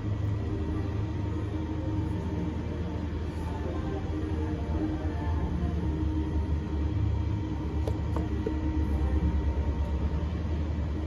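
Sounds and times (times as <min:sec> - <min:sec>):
faint steady tones: 0:00.0 - 0:11.0
steady low rumble: 0:00.0 - 0:11.0.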